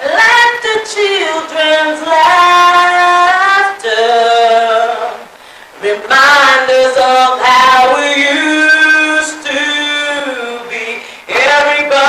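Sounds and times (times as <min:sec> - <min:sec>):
person singing slow melody: 0:00.0 - 0:12.0.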